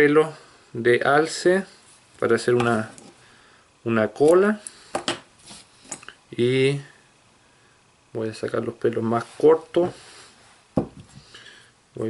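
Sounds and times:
soft knock: 10.8 - 11.1.

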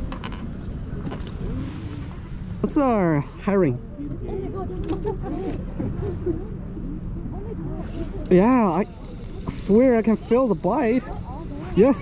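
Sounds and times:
steady low rumble: 0.0 - 12.0
far-off people chatting: 0.8 - 12.0.

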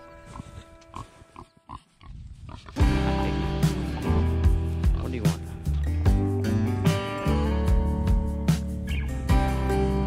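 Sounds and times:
pigs grunting: 0.2 - 5.1
music with heavy beat: 2.8 - 10.0.

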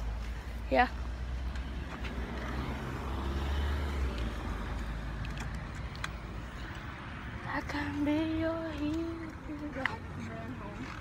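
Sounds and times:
vehicle driving past: 1.2 - 7.6.

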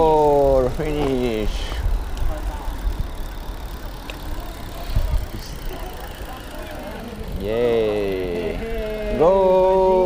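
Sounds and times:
tyre noise on road: 0.0 - 10.0
wind rumbling on microphone: 4.9 - 5.6.

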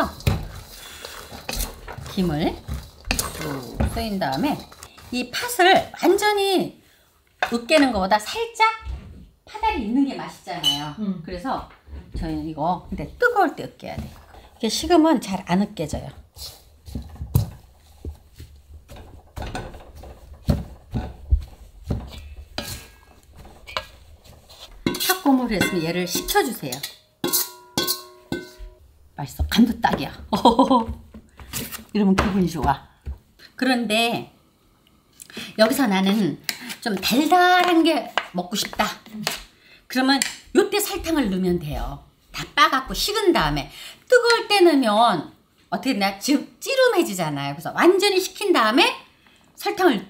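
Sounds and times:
wooden spatula scraping metal bowl: 0.0 - 6.4, 11.6 - 32.7, 35.4 - 39.5
metal masher knocking bowl: 1.3 - 4.8, 18.9 - 28.8
sharp knocks on metal bowl: 27.2 - 28.8.

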